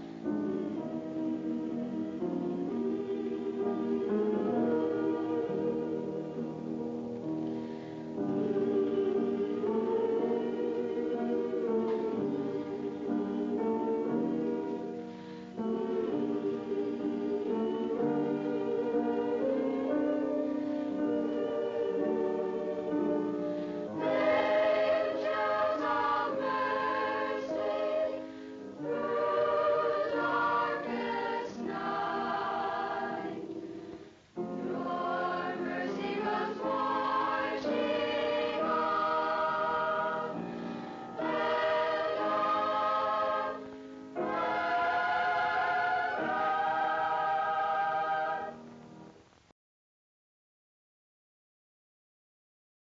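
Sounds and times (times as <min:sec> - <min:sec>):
choir singing held chords: 0:00.0 - 0:48.9.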